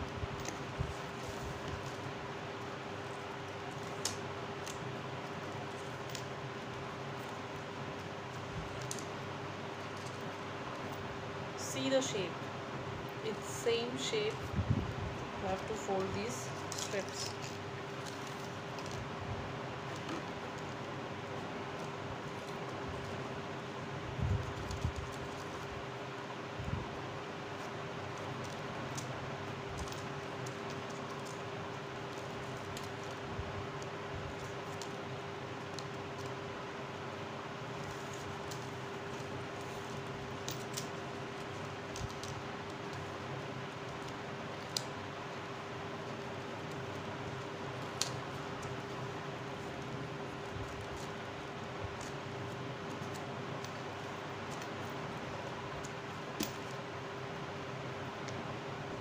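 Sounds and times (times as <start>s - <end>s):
paper strips being folded: 27.2s - 58.7s.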